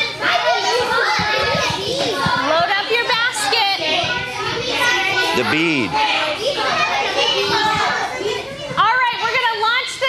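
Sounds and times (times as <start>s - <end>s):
high-pitched children's voices: 0.0s - 10.0s
young children chattering: 0.0s - 10.0s.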